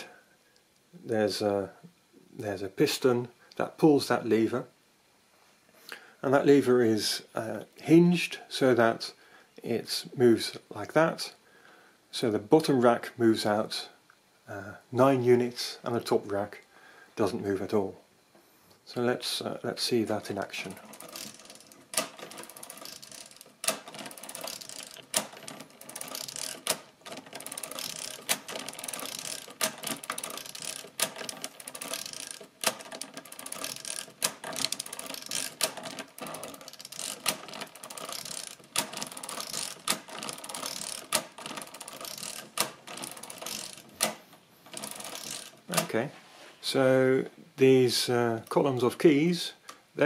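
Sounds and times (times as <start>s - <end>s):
mechanical calculator gears rattling: 20.2s - 45.9s.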